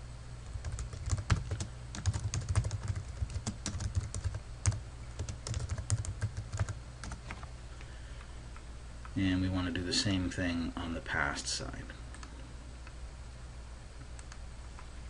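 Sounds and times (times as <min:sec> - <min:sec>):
low steady hum: 0:00.0 - 0:15.0
keyboard typing: 0:00.6 - 0:07.4.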